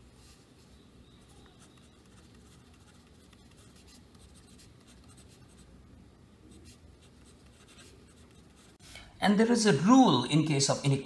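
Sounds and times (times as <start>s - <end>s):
pen scratching on paper: 1.4s - 5.7s, 6.6s - 8.8s.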